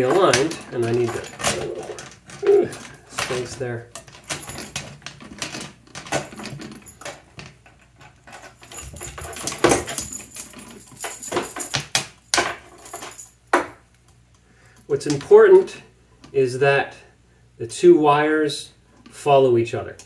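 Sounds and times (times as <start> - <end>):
metal chain clinking and rattling: 0.0 - 13.5.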